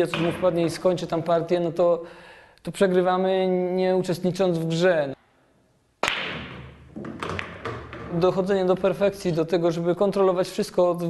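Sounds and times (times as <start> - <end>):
cue ball cracking into balls: 6.0 - 8.3
pool balls clattering: 6.2 - 8.8.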